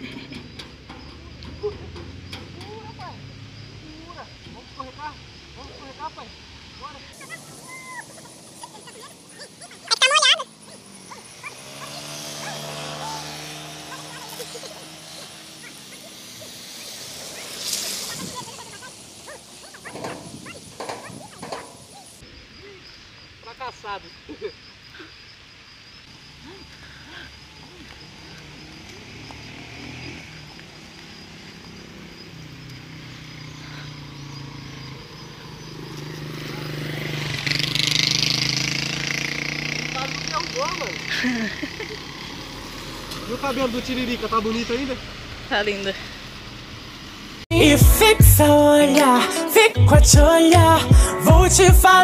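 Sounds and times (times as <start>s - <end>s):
motorcycle engine approaching: 0.0s - 22.2s, 26.1s - 48.4s
dog whimpering: 18.2s - 22.2s.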